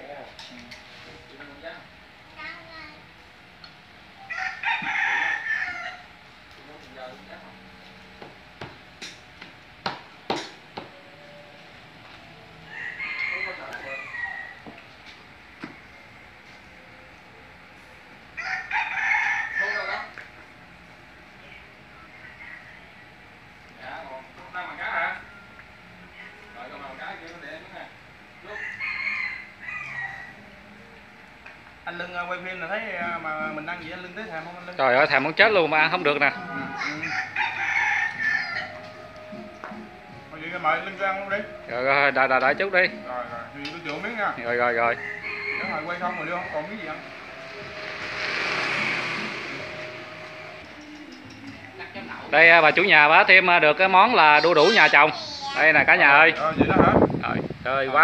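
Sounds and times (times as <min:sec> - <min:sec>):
rooster crowing: 0:04.2 - 0:06.3, 0:12.4 - 0:15.0, 0:18.3 - 0:20.3, 0:22.0 - 0:23.2, 0:26.0 - 0:26.6, 0:28.4 - 0:30.8, 0:35.8 - 0:39.4, 0:43.9 - 0:51.1
higher-pitched sound: 0:39.0 - 0:50.8, 0:53.6 - 0:55.9.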